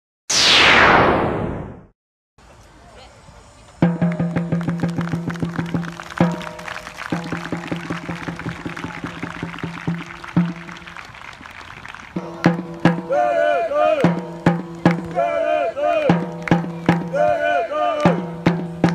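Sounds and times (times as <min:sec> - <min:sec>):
falling whoosh effect: 0:00.3 - 0:01.9
drums beating rapidly: 0:03.8 - 0:11.1, 0:12.1 - 0:15.2, 0:16.1 - 0:17.4, 0:18.0 - 0:18.9.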